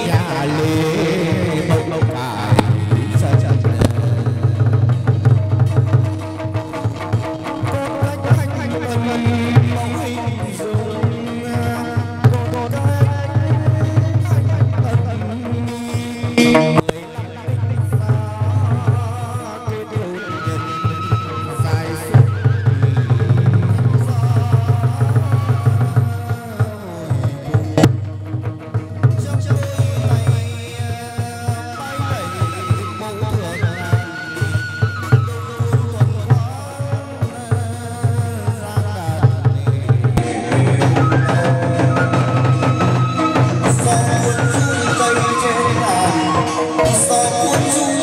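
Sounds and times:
fast dense drumming: 0.0 - 19.8, 35.8 - 46.3
ritual music melody: 0.0 - 48.0.

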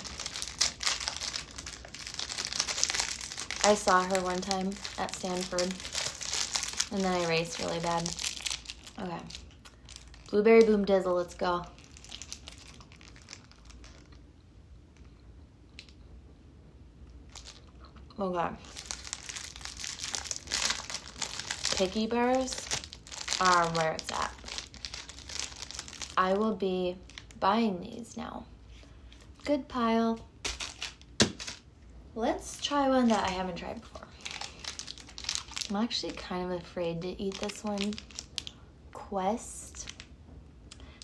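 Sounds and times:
plastic wrapper crinkling: 0.0 - 14.3, 17.3 - 17.8, 18.6 - 27.4, 30.4 - 31.7, 32.6 - 38.6, 39.7 - 40.1
person chewing energy bar: 34.2 - 35.6.

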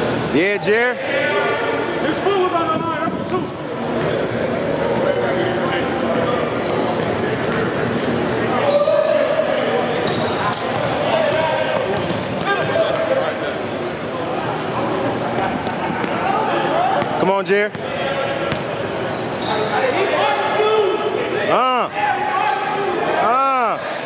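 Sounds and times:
chatter of people: 0.0 - 24.0
sneaker squeaks: 1.0 - 1.5, 3.0 - 5.4, 6.2 - 9.0, 10.0 - 16.4, 18.5 - 20.9, 22.1 - 22.7.

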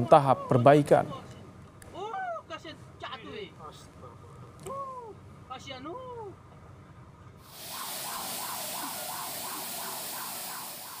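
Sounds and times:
loud steady hiss: 7.4 - 11.0
siren rising and falling: 7.5 - 11.0.

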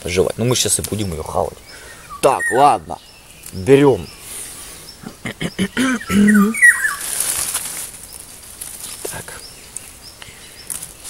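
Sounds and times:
bird chirps: 0.0 - 7.3
nettle leaves rustling by hand: 6.6 - 11.0.

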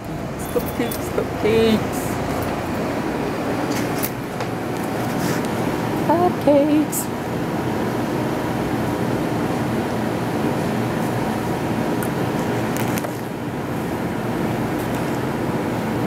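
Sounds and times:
low machinery hum: 0.0 - 16.0.

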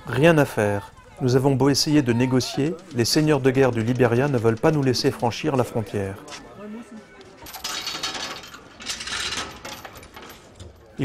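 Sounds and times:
heavy chain rattling through metal guide: 2.2 - 5.9, 7.4 - 11.0.

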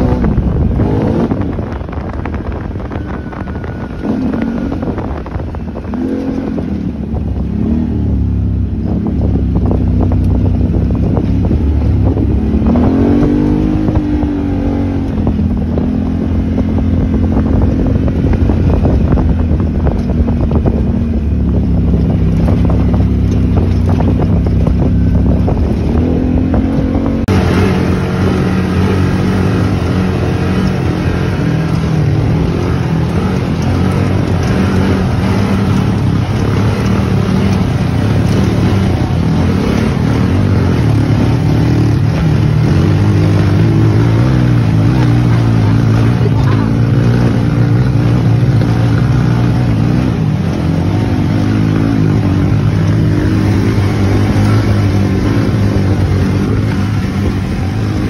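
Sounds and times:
road and wind noise: 0.0 - 58.0
vehicle engine running: 0.0 - 58.0.

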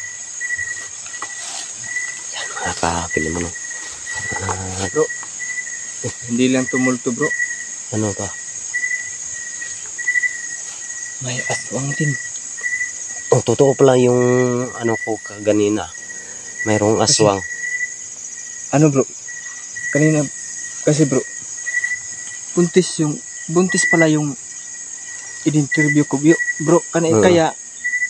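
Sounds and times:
crickets trilling: 0.0 - 28.0
insect chirping in short pulses: 0.0 - 28.0.

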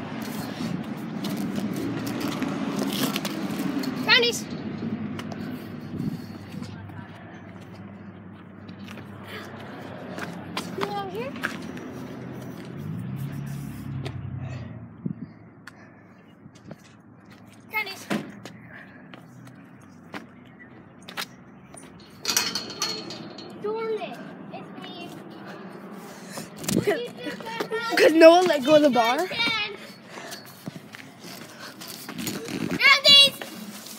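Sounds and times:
children calling and shouting: 3.6 - 14.3, 15.1 - 33.9.

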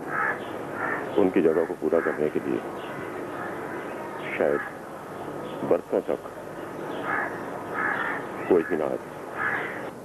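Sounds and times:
birds cawing: 0.0 - 10.0
man speaking: 8.5 - 9.0.

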